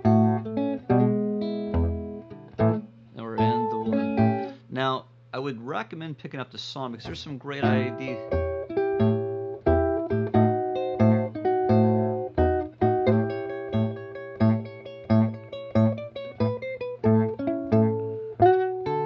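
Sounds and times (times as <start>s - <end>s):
fingerstyle electric guitar blues: 0.0s - 4.6s, 7.0s - 19.0s.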